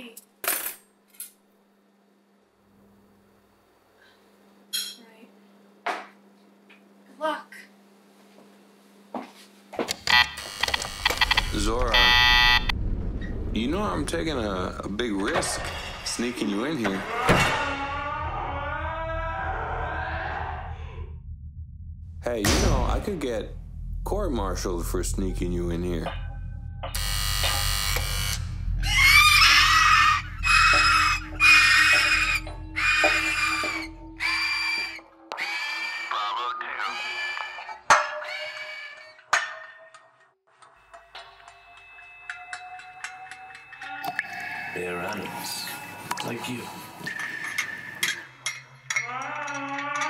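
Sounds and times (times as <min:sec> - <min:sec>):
harsh electronic buzzing: 0:10.1 - 0:12.7, 0:26.9 - 0:28.8
low droning music: 0:11.3 - 0:36.0
person screaming: 0:17.1 - 0:21.0.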